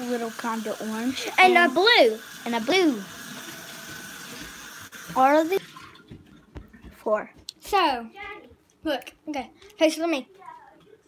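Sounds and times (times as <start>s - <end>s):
water running from bath tap: 0.0s - 7.3s.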